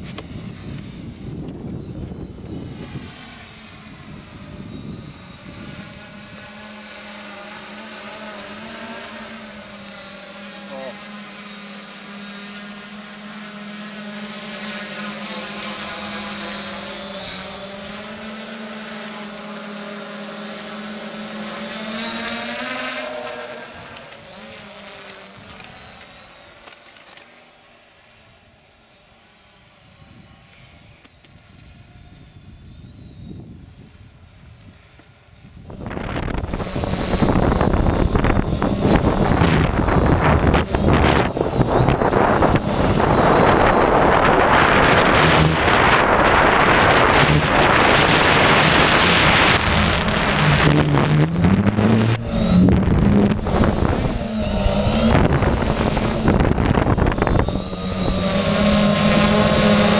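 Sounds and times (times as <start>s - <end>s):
wind rumbling on microphone: 0.0s - 6.7s, 29.9s - 59.9s
drone propellers buzzing: 0.0s - 59.9s.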